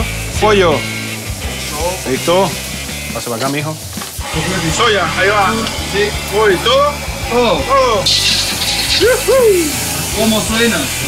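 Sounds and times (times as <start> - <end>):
background music: 0.0 - 11.0
sauce sizzling in hot wok: 0.0 - 11.0.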